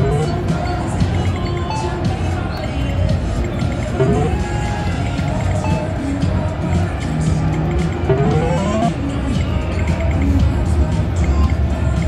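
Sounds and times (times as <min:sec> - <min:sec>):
slot machine electronic chimes: 0:00.0 - 0:02.2, 0:03.7 - 0:04.4, 0:05.6 - 0:05.9, 0:08.1 - 0:09.0
background music: 0:00.0 - 0:12.0.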